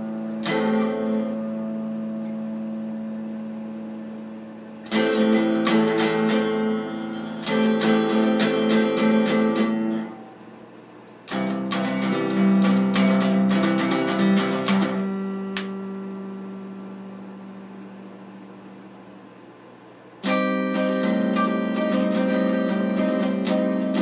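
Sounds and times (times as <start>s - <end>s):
electric guitar playing: 0.0s - 3.6s, 4.8s - 10.4s, 11.3s - 17.6s, 20.2s - 24.0s.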